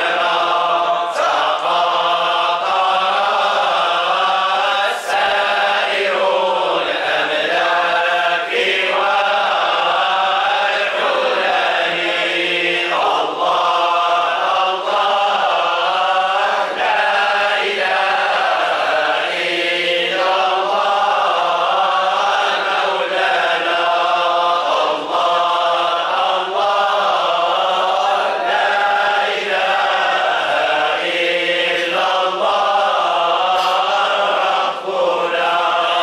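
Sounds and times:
men chanting in unison: 0.0s - 36.0s.

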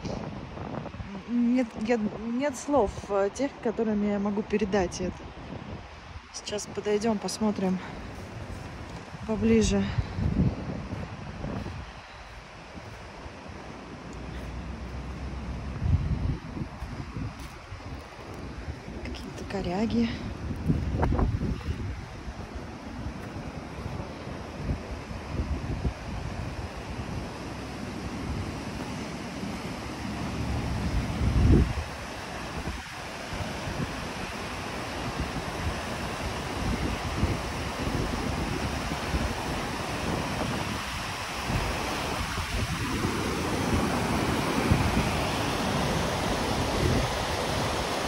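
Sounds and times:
wind buffeting microphone: 0.0s - 48.0s
river rushing over rocks: 4.9s - 48.0s.

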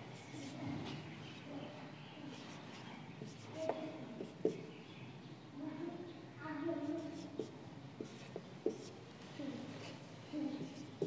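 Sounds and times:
marker writing on whiteboard: 0.0s - 4.9s, 6.8s - 11.0s.

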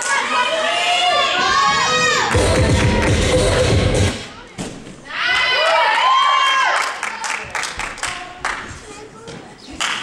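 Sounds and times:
floor routine music: 1.2s - 4.4s
spectators cheering and whooping: 5.1s - 7.3s.

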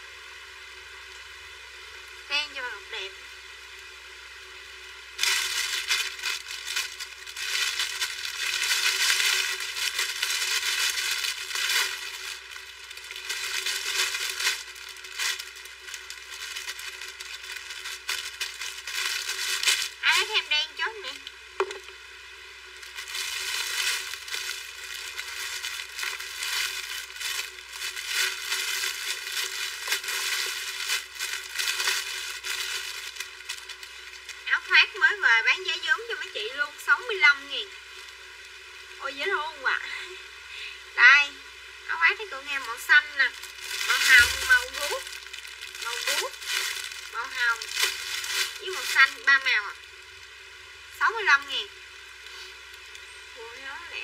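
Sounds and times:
woman's voice: 2.3s - 3.2s, 20.0s - 21.3s, 34.5s - 37.7s, 39.0s - 40.2s, 41.0s - 45.1s, 45.8s - 46.4s, 47.1s - 47.7s, 48.6s - 49.8s, 51.0s - 51.7s, 53.4s - 54.0s
plastic bags and clothes rustling: 5.2s - 20.5s, 22.7s - 36.5s, 42.2s - 50.3s.

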